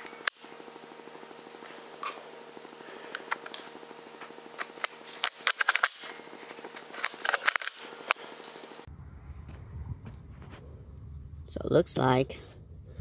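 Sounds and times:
low electronic buzz: 0.0 - 13.0
low rumble: 8.8 - 13.0.

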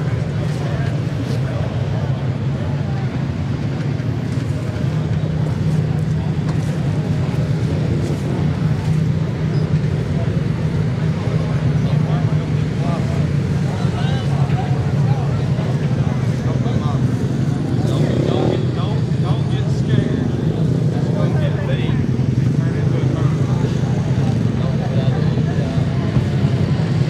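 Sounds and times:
vehicle engine drone: 0.0 - 27.0.

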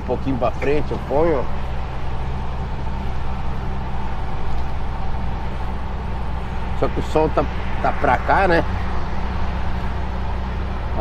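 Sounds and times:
diesel truck engine running: 0.0 - 11.0
road noise: 0.0 - 11.0.

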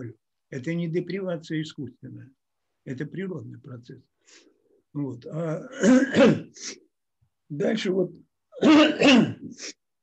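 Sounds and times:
man clearing his throat: 5.5 - 6.6, 8.6 - 9.6.

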